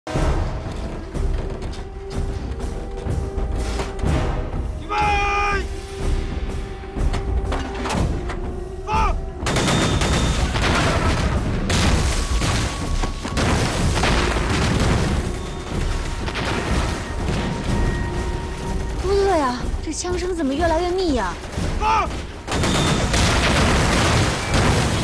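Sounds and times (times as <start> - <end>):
person shouting: 4.8 - 5.7, 8.8 - 9.2
artillery booms: 9.4 - 18.0, 21.4 - 25.0
gunshots: 9.4 - 18.1, 21.4 - 25.0.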